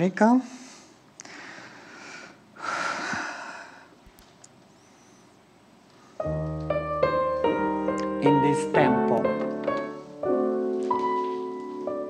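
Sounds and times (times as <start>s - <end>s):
person breathing noisily: 0.6s - 4.0s.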